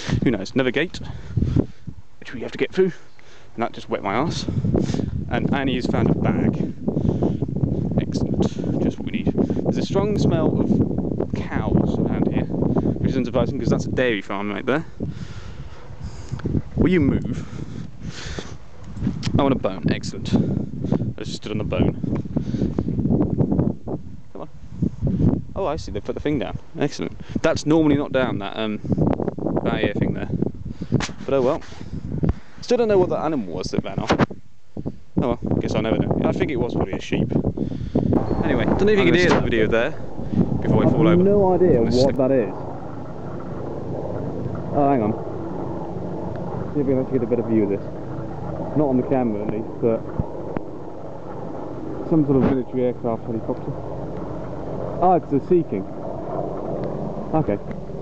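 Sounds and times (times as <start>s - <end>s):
wind buffeting microphone: 0.0s - 58.0s
helicopter rotor drone: 38.2s - 58.0s.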